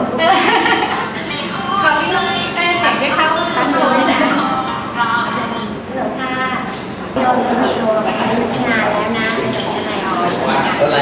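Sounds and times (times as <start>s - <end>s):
conversational speech: 1.0s - 11.0s.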